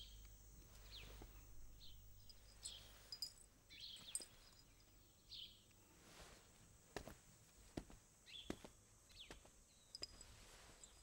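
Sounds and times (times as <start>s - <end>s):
birds chirping: 0.0s - 5.7s, 8.2s - 10.2s
faint low hum: 0.0s - 11.0s.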